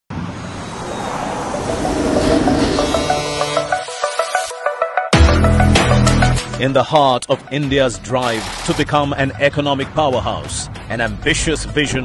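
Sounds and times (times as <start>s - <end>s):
vehicle roar with low hum: 0.1s - 4.0s.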